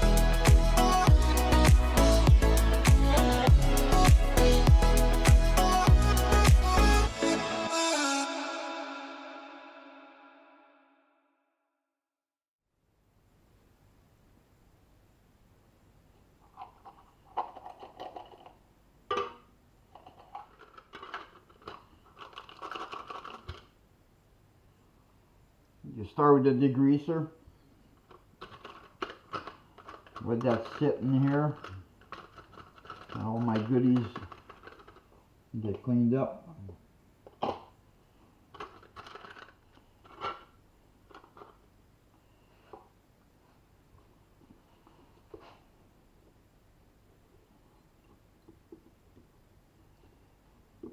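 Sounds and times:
metal parts clicking and rattling: 20.0 - 23.7, 28.1 - 35.1, 38.5 - 40.5.

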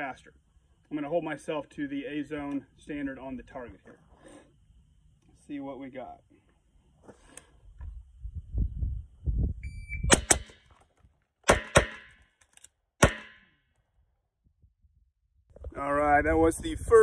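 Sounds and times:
shot timer beep: 9.6 - 10.5
pistol shots: 10.1 - 10.7, 11.4 - 12.2, 13.0 - 13.4
suppressed rifle shots: 10.1 - 10.8, 11.5 - 12.2, 13.0 - 13.4.

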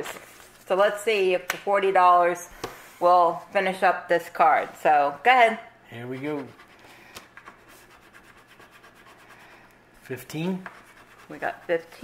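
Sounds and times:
scratch-off card being scratched: 10.6 - 11.9.

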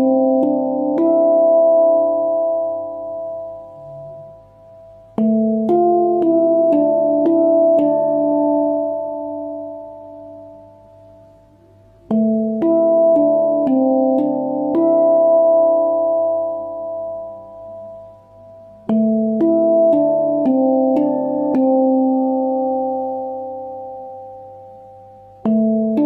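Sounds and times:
handpan notes: 0.0 - 26.0.

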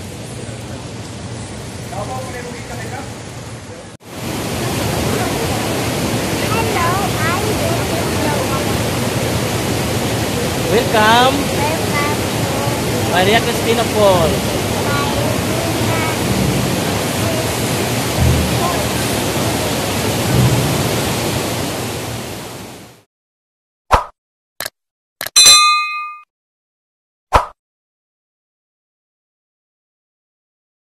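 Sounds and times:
white-water rapids rushing: 4.0 - 22.9
bright ringing ding: 25.3 - 26.3.

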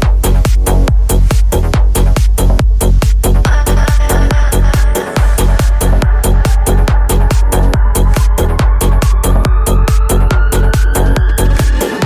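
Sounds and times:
driving kick drum: 0.0 - 12.0
trance dance music: 0.0 - 12.0
synth tone rising in pitch: 4.1 - 12.0.

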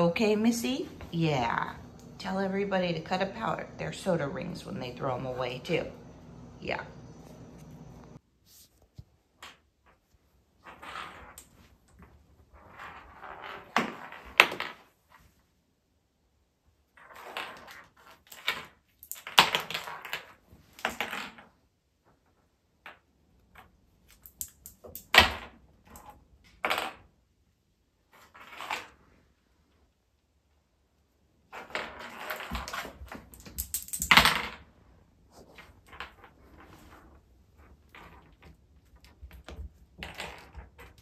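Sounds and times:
toy clattering on hardwood floor: 31.5 - 34.7.

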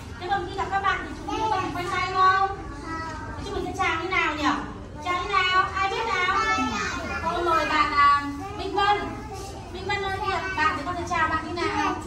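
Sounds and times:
young children talking and calling: 0.0 - 12.0.

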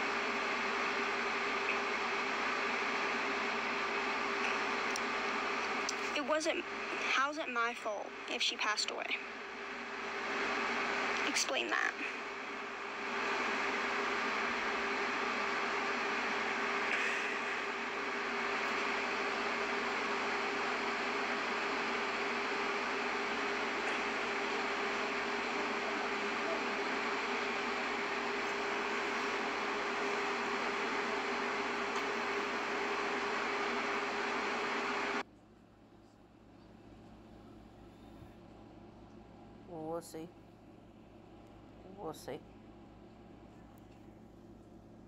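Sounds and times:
constant low hum: 0.0 - 45.0.

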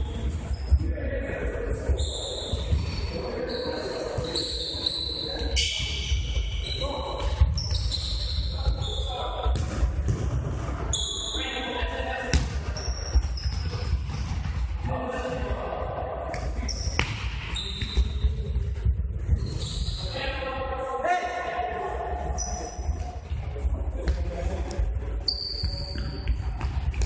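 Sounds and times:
shoes squeaking on floor: 2.0 - 9.4, 10.9 - 11.5, 12.7 - 14.4, 16.6 - 18.4, 19.3 - 20.2, 25.2 - 26.6
ball kicked and bouncing: 12.3 - 14.7.

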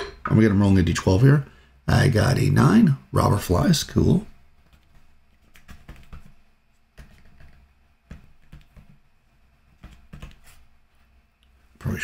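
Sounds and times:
faint keyboard typing: 4.6 - 9.1, 9.7 - 10.6.

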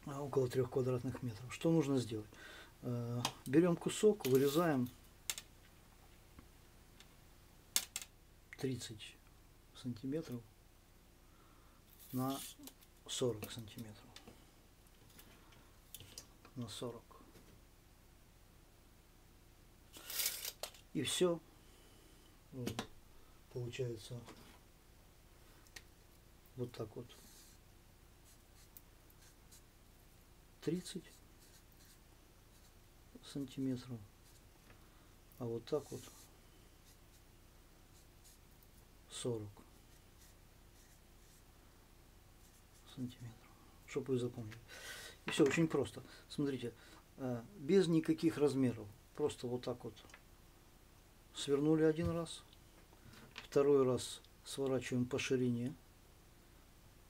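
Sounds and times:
marker scratching on fabric: 35.8 - 37.3, 39.8 - 41.4.

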